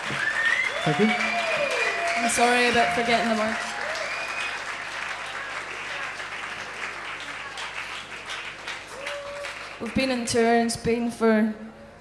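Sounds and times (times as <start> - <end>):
audience applause: 0.0 - 10.3.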